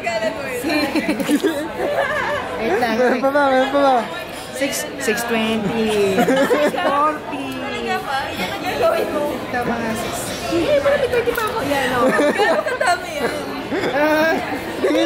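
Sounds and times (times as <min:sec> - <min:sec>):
people chatting: 0:00.0 - 0:15.0.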